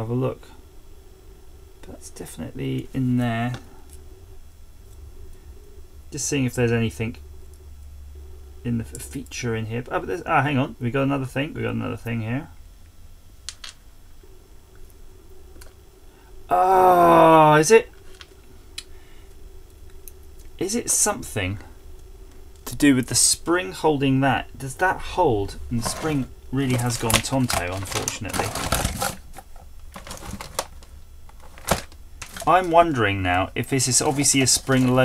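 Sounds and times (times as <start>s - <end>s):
faint steady tone: 0.0s - 35.0s
room hum: 0.0s - 35.0s.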